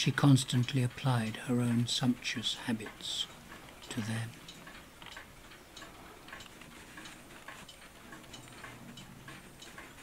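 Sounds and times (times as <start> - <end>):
clocks ticking: 0.0 - 10.0.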